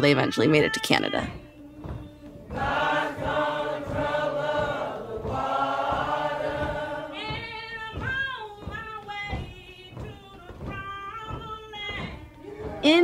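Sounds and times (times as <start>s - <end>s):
choir singing held chords: 2.4s - 7.4s.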